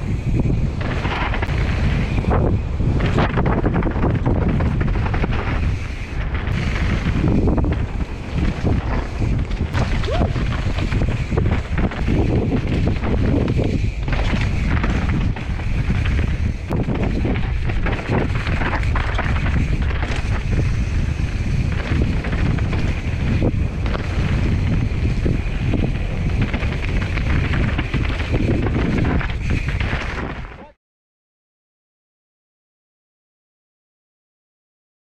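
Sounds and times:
wind buffeting microphone: 0.0 - 30.7
mountain bike rattling over stones: 0.0 - 30.8.

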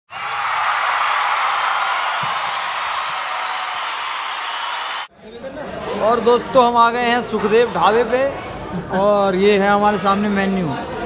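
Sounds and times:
crowd applause and cheering: 0.1 - 5.1.

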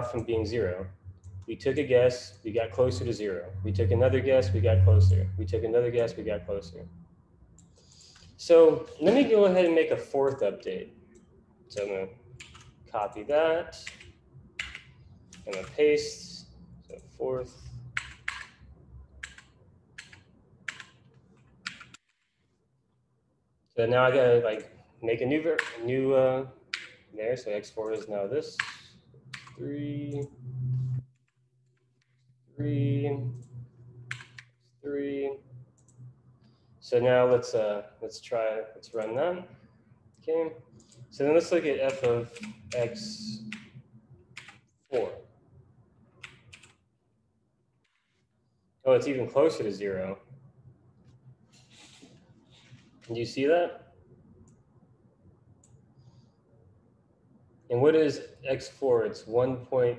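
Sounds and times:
computer keyboard keystrokes: 11.2 - 12.8, 13.8 - 15.8, 18.0 - 18.6, 19.2 - 22.3, 25.6 - 25.8, 28.6 - 30.3, 34.1 - 34.6, 41.8 - 42.9, 46.2 - 46.8.

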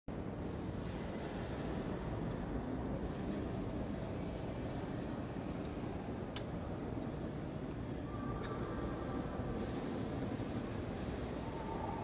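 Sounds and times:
low rumble of room noise: 0.1 - 12.0.

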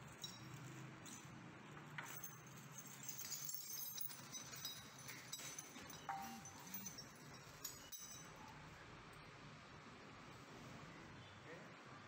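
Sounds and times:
metal bolts clinking in plastic bag: 0.0 - 8.3.

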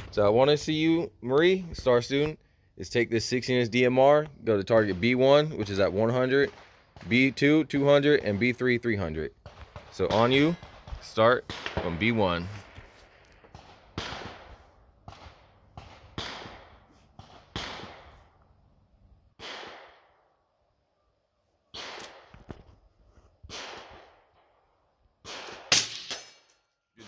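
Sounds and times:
rifle gunshots with echo: 4.5 - 12.9, 13.5 - 18.4, 19.3 - 20.4, 21.7 - 22.4, 23.5 - 26.5.

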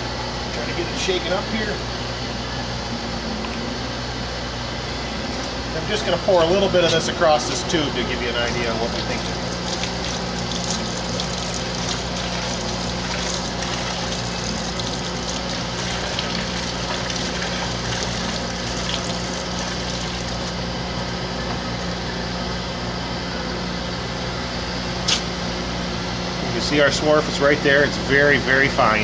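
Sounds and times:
low machine hum: 0.0 - 29.0
liquid pouring and splashing: 9.0 - 20.5.

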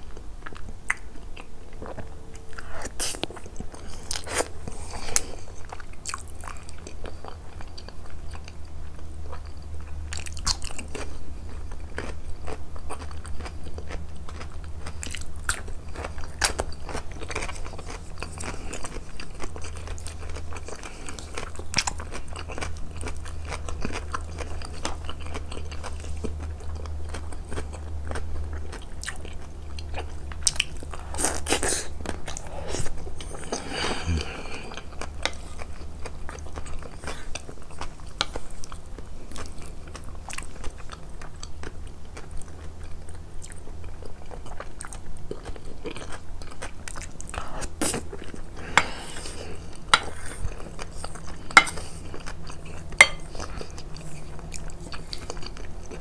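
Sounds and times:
close-miked chewing: 0.0 - 56.0
low steady hum: 0.0 - 56.0.

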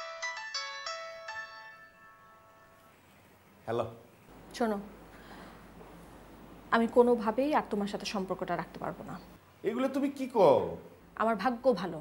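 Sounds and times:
phone ringtone: 0.0 - 3.0.

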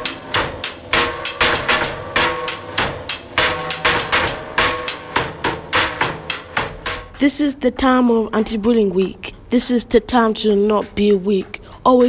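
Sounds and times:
rap backing beat: 0.0 - 12.0.

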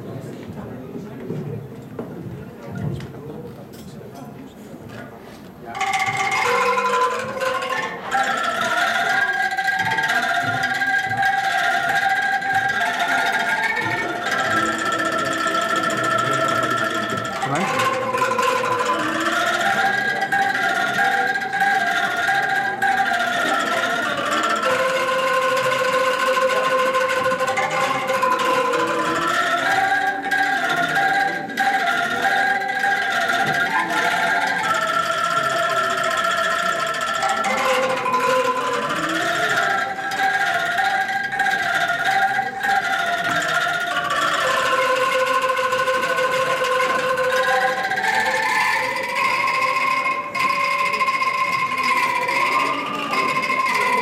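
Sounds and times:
bamboo angklung ensemble melody: 0.0 - 54.0.

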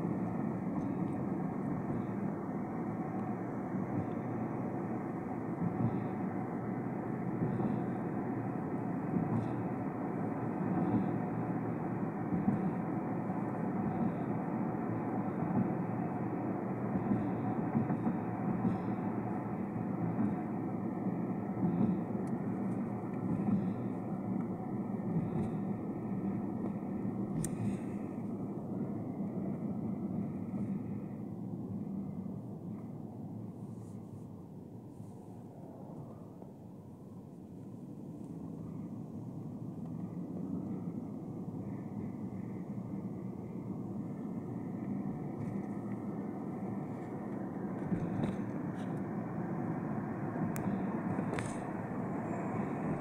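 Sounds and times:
muffled vehicle road noise: 0.0 - 53.0.

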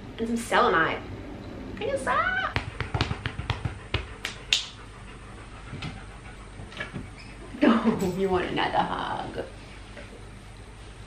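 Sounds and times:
dog panting: 2.5 - 7.4.

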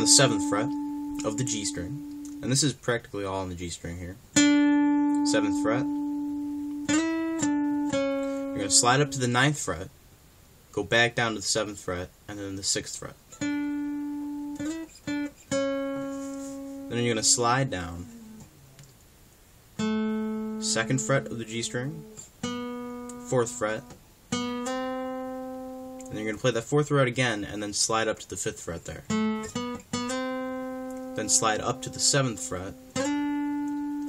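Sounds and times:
acoustic guitar plucked notes: 0.0 - 2.8, 4.3 - 9.6, 13.3 - 18.8, 19.8 - 27.4, 29.0 - 34.0.

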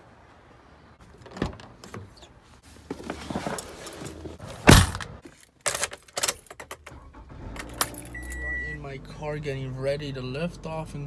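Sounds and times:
car door slamming: 4.6 - 5.2
car keys jangling: 5.7 - 8.6.

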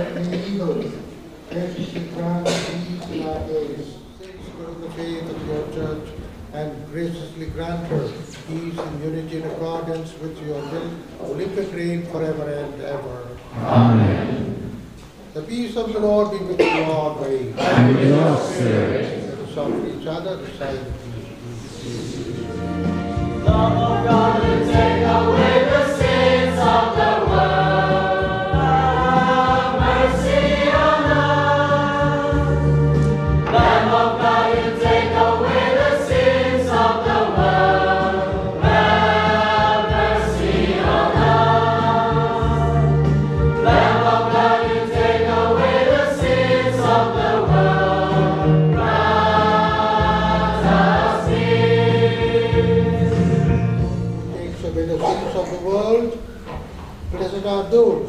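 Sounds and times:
choir singing a hymn: 0.0 - 4.0, 10.6 - 15.2, 17.5 - 55.2.

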